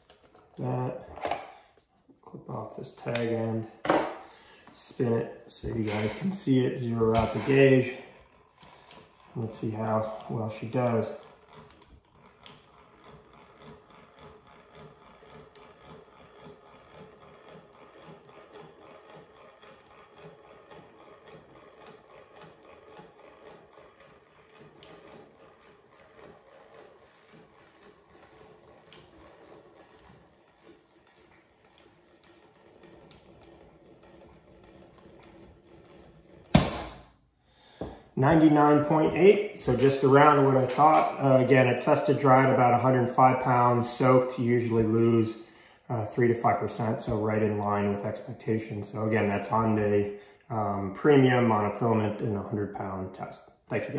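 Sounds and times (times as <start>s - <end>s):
handwheel cranking: 5.5s - 45.4s.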